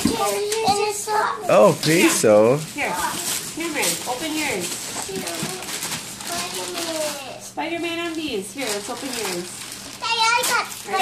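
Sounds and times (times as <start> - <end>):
young children talking: 0.0 - 1.8, 6.2 - 7.6, 10.0 - 11.0
woman talking: 2.7 - 5.5, 7.5 - 9.6.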